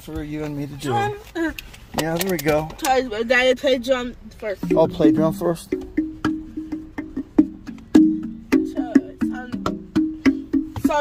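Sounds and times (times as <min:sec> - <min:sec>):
wooden tongue drum notes: 0:04.6 - 0:11.0.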